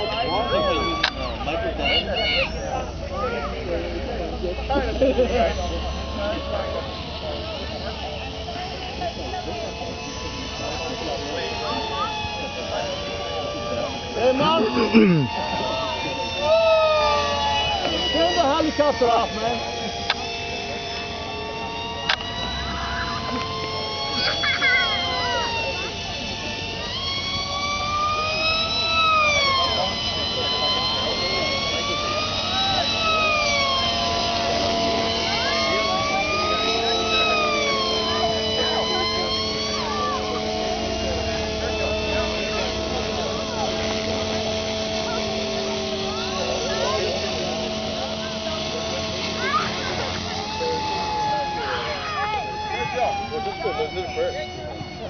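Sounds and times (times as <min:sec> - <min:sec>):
model airplane motor whining: 0:00.0 - 0:55.0.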